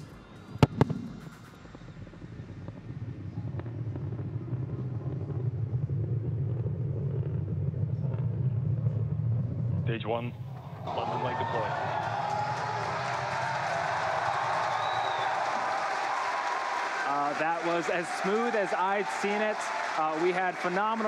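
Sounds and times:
low rocket engine rumble: 0.0 - 21.0.

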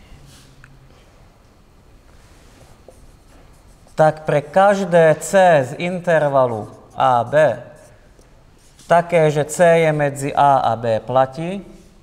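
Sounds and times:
marker pen writing on whiteboard: 2.6 - 9.2.

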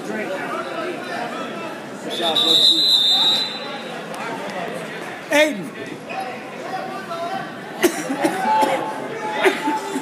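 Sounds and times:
crowd chatter: 0.0 - 10.0
referee whistle blast: 2.1 - 3.8.

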